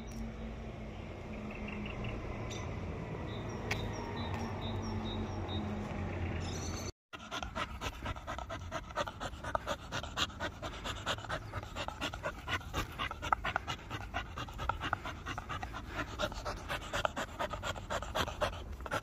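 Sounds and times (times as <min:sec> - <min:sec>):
dog panting hard: 0:07.1 - 0:19.0.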